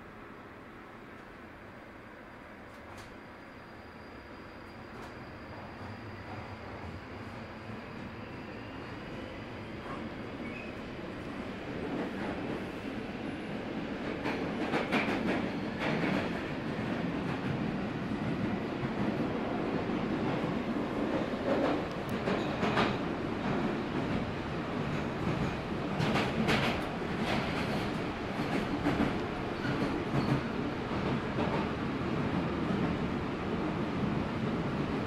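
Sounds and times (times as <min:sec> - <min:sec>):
train wheels rumbling on rail: 0:02.6 - 0:03.3, 0:04.0 - 0:35.0
train clacks and rattles: 0:02.6 - 0:35.0.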